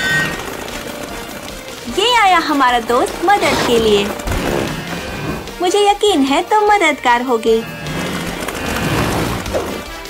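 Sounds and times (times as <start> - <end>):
cartoon propeller plane buzzing: 6.6 - 10.0.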